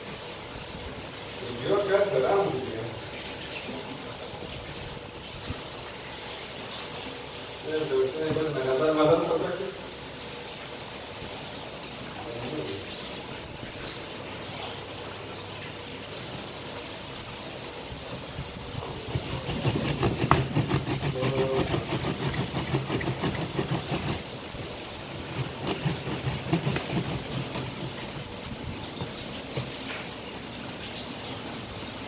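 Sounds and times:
plastic juicer grinding and clicking: 18.9 - 24.2, 25.2 - 28.2.

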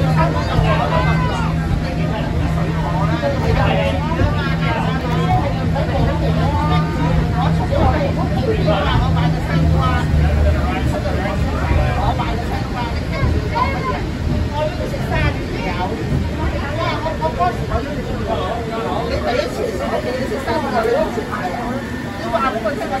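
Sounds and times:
passengers chattering: 0.0 - 23.0
steady low hum: 0.0 - 23.0
tram car running noise: 0.0 - 23.0.

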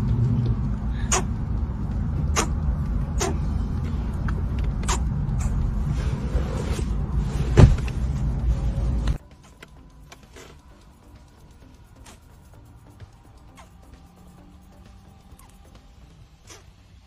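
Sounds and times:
car interior rumble: 0.0 - 17.0.

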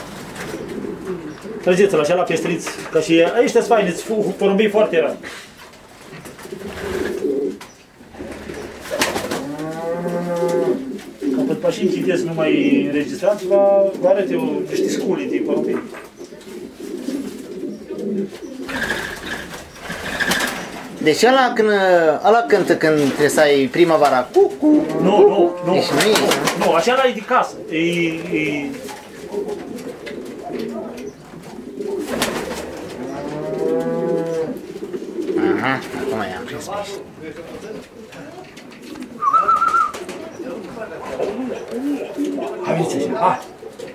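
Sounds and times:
long low pigeon call: 0.0 - 1.9, 5.3 - 13.6, 14.4 - 21.0, 24.3 - 26.8, 27.4 - 37.0, 37.6 - 43.9
pigeons cooing: 0.0 - 43.9.

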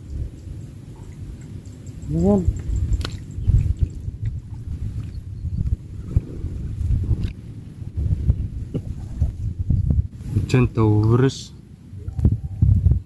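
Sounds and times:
wind buffeting microphone: 0.0 - 11.2, 11.8 - 13.0
water sloshing: 2.5 - 9.7.

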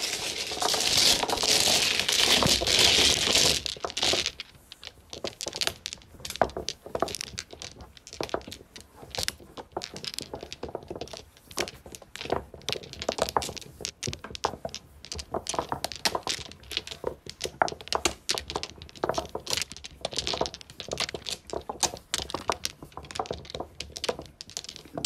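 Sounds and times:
mahjong tiles clattering: 0.0 - 25.0.

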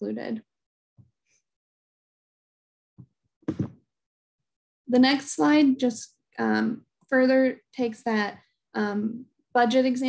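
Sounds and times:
short thumps: 3.0 - 3.8.

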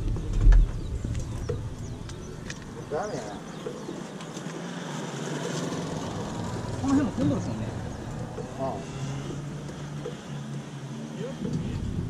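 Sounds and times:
motorcycle riding past: 3.0 - 12.0.

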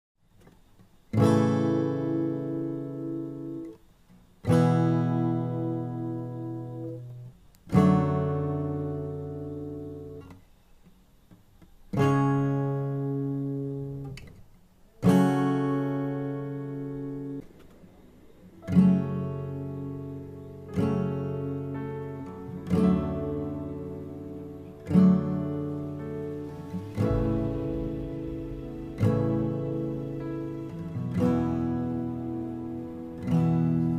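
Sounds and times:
acoustic guitar strummed chords: 0.4 - 33.9.

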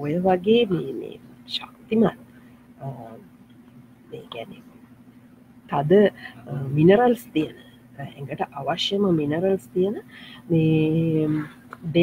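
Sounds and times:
steady low hum: 0.0 - 12.0
woman murmuring: 0.4 - 1.2, 9.0 - 12.0.

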